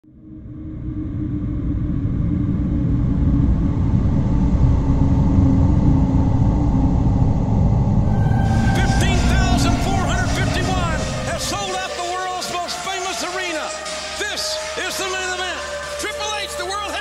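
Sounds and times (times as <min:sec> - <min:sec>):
deep steady rumble: 0:00.1 - 0:12.0.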